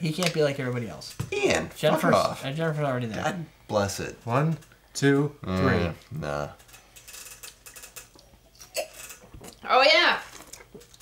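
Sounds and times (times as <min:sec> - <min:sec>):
person grunting: 0:05.4 - 0:06.0.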